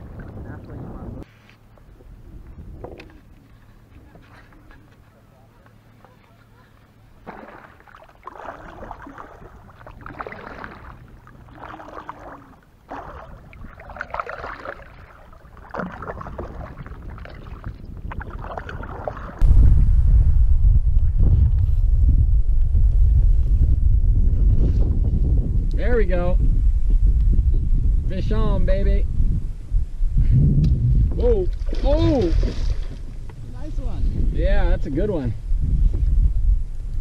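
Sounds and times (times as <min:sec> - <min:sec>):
wind buffeting microphone: 0:00.0 - 0:04.7, 0:08.2 - 0:37.0
kayak hull on water: 0:00.0 - 0:19.7, 0:31.0 - 0:34.3.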